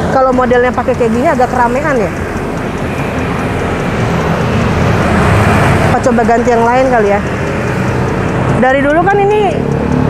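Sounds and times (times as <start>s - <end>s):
passing vehicle engine and tyres: 0.0s - 10.0s.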